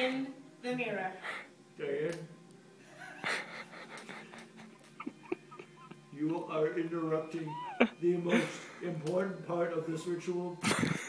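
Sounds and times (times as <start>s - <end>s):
person's squeaky vocal sounds: 7.4s - 8.0s.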